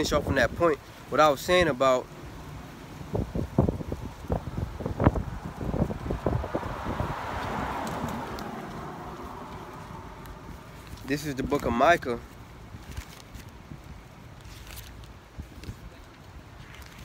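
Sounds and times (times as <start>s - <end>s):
car passing: 2.0s - 11.6s
wind on microphone: 3.0s - 11.7s.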